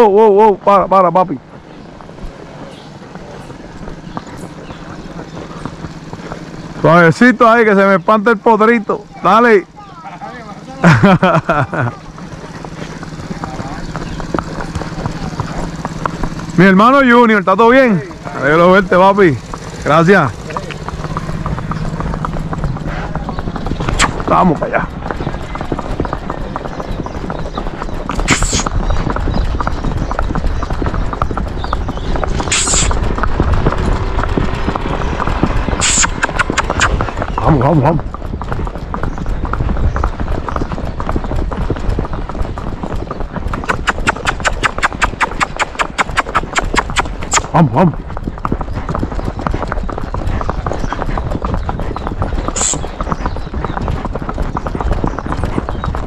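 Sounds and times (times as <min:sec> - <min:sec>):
hooves clip-clopping on pavement: 0:00.0 - 0:56.0.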